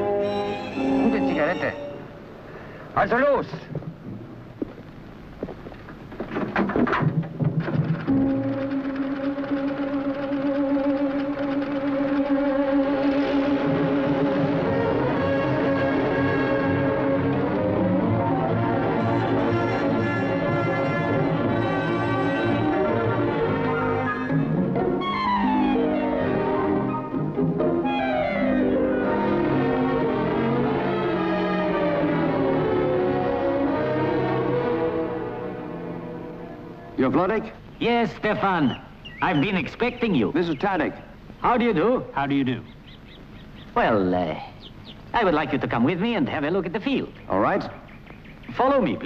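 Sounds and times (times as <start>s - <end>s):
orchestral film score with brass: 13.0s - 37.0s.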